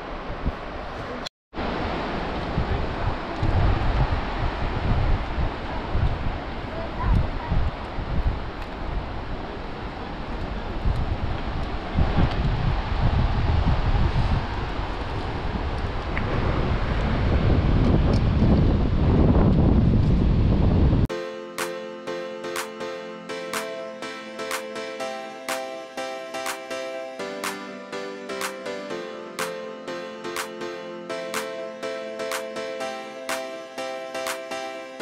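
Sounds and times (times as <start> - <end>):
wind buffeting microphone: 0.3 - 21.1.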